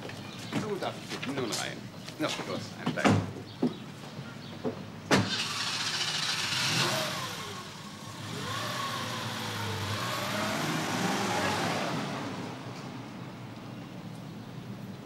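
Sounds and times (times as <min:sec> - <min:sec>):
car engine starting and revving: 0:05.2 - 0:13.0.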